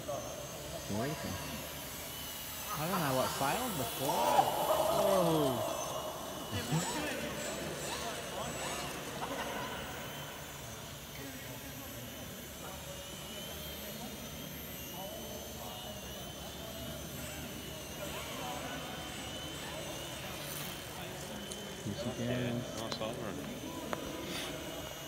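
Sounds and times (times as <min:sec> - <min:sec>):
large hall echo and hum: 0:00.0 - 0:25.0
model plane motor whining: 0:00.0 - 0:25.0.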